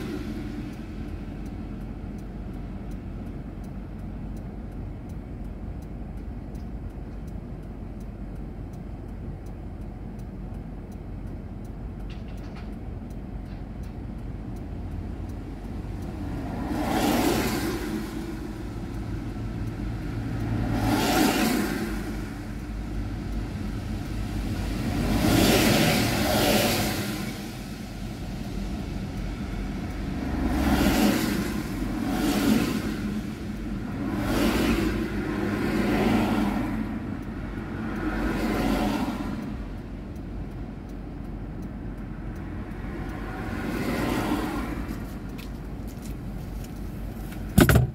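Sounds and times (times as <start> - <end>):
low background rumble: 0.0 - 16.8
cars passing: 0.0 - 47.9.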